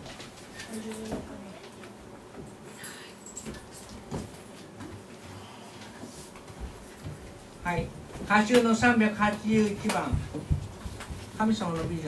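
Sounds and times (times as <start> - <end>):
soft knocks: 8.0 - 12.0.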